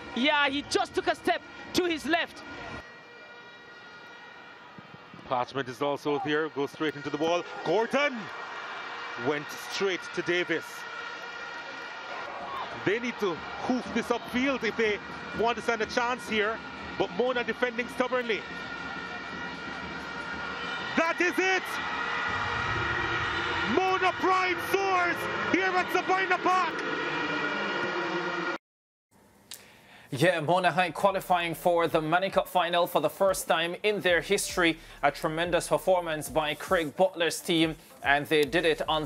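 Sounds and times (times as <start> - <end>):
stadium crowd ambience: 0.0 - 28.6, 30.1 - 39.0.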